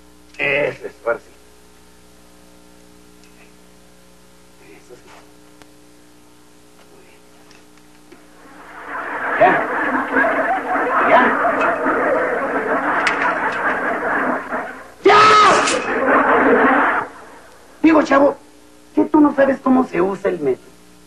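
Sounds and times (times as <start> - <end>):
audience laughter: 8.4 - 17.8.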